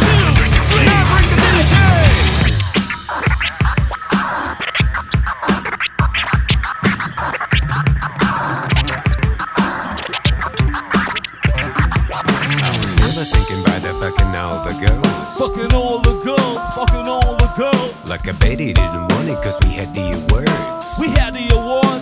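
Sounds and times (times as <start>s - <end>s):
drum beat: 0.0s - 22.0s
turntable record scratching: 0.0s - 22.0s.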